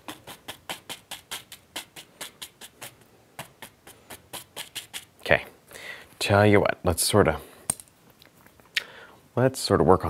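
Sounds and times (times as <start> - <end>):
brush dabbing on canvas: 0.0 - 5.2.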